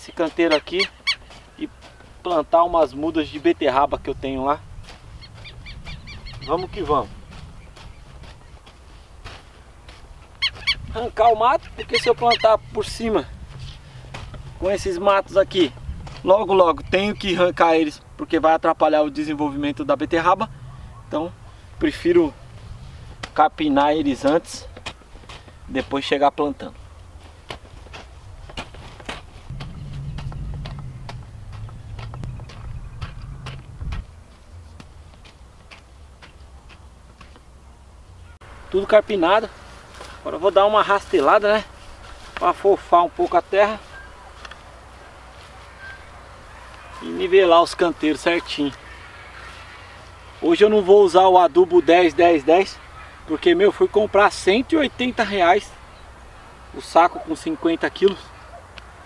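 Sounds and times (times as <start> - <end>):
bird calling: 0.0 - 2.3, 4.8 - 8.8, 9.4 - 15.0, 20.1 - 22.7, 29.4 - 34.8, 38.1 - 59.0
hoe chopping soil: 5.0 - 16.7, 21.5 - 26.2, 27.2 - 37.5
low rumble: 29.5 - 34.7.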